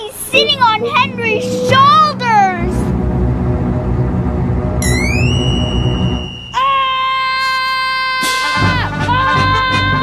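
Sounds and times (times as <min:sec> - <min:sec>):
low rumbling drone: 0:00.0 - 0:06.6
sustained chord: 0:00.0 - 0:06.8
rising glide to high tone: 0:00.3 - 0:07.4.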